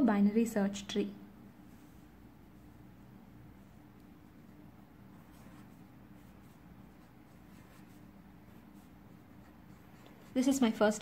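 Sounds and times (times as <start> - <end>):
low steady hum: 0.0 - 11.0
felt-tip marker on paper: 5.2 - 11.0.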